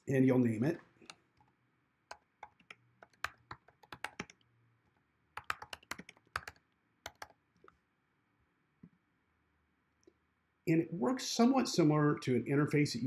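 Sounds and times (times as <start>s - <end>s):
computer keyboard typing: 2.1s - 4.4s, 5.4s - 7.4s.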